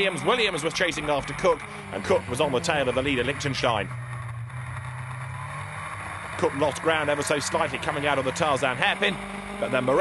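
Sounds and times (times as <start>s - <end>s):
race car engines drone: 0.0s - 10.0s.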